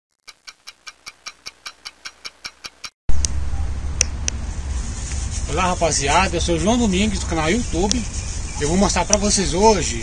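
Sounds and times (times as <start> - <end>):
clock-like ticking: 0.2 - 2.9
low rumble on microphone: 3.1 - 9.0.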